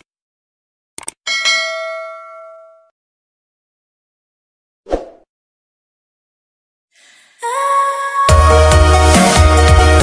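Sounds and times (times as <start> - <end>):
notification bell ding: 1.3 - 2.9.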